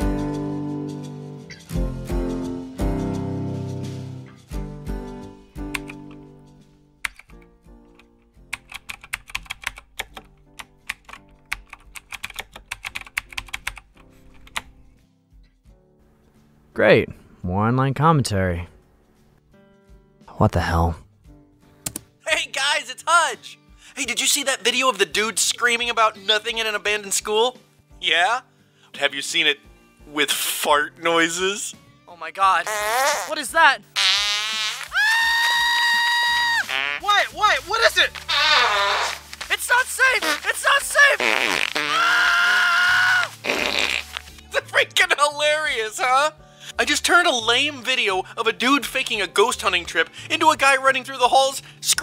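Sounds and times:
soft background music: 0:00.0 - 0:52.0
typing on computer keyboard: 0:08.5 - 0:14.7
high-pitched scream: 0:34.0 - 0:37.1, 0:38.3 - 0:39.2, 0:41.8 - 0:43.4.

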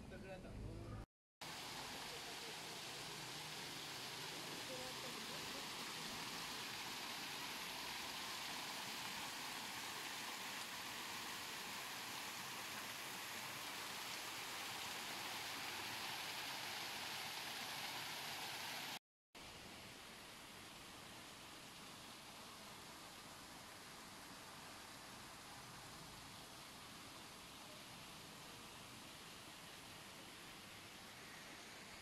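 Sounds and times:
water splashing down rock waterfall: 0:01.4 - 0:19.0.

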